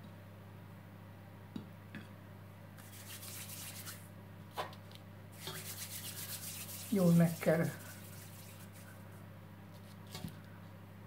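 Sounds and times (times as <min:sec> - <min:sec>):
fingertips rubbing flour on plate: 0:02.8 - 0:04.0, 0:05.4 - 0:09.2.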